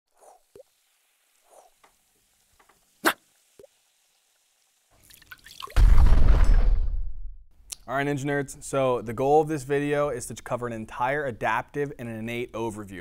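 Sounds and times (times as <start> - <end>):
cartoon liquid dripping: 0.2 - 1.7, 4.9 - 5.8
fizzing: 0.2 - 5.8
loud deep explosion: 5.8 - 7.4.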